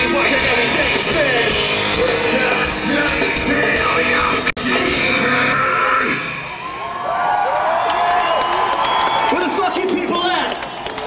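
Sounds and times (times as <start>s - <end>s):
live rock band playing: 0.0s - 6.5s
crowd cheering and yelling: 0.0s - 11.0s.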